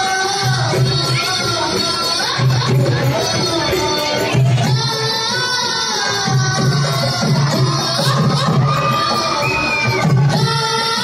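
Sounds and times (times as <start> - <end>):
children shouting and cheering: 0.0 - 11.0
drum beat: 0.0 - 11.0.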